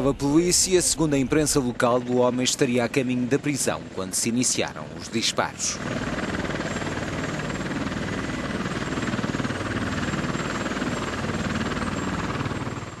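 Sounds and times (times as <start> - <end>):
helicopter rotor chopping: 0.0 - 13.0.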